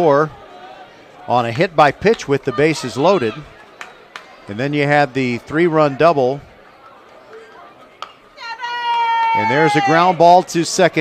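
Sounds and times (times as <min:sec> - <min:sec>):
ballpark crowd ambience: 0:00.0 - 0:11.0
spectator shouting: 0:02.2 - 0:03.6, 0:08.4 - 0:10.4.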